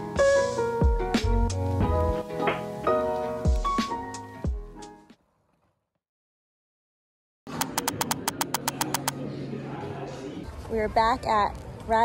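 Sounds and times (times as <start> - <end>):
rapid key clicks typing: 7.5 - 9.1.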